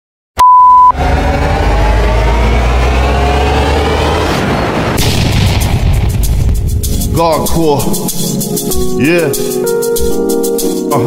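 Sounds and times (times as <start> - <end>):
loud steady beep: 0.4 - 1.0
deep rumble rising in pitch: 0.6 - 8.5.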